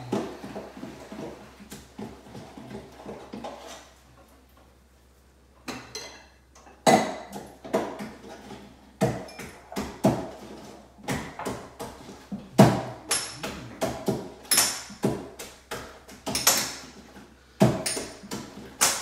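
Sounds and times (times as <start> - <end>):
dishes and utensils clinking: 5.6 - 7.5, 12.6 - 15.0.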